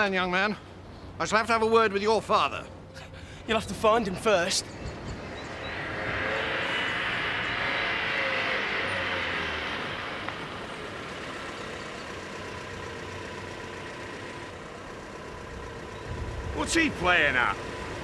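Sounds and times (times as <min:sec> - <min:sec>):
car driving by: 0:03.1 - 0:18.0.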